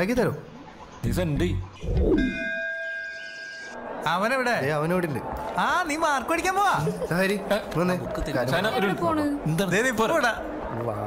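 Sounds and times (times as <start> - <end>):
bell-like chime: 2.2 - 3.8.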